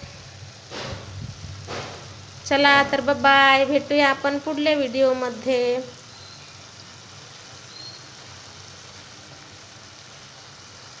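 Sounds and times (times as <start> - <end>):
curry sizzling in a pan: 0.0 - 11.0.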